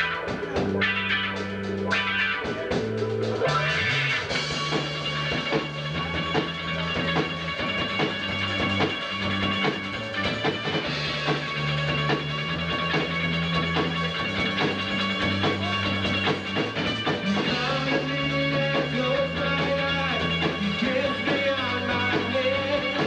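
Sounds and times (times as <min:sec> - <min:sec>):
drum kit: 0:00.0 - 0:23.0
electric bass low notes: 0:00.0 - 0:23.0
electric guitar: 0:00.0 - 0:23.0.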